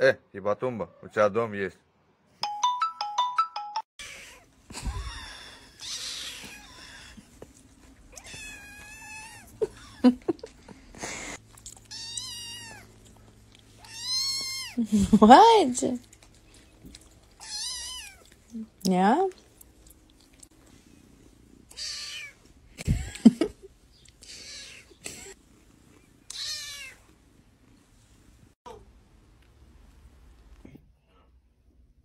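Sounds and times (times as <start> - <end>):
kitten meowing: 8.1 - 9.5, 11.9 - 12.9, 13.8 - 14.8, 17.4 - 18.3, 21.7 - 22.4, 26.3 - 27.0.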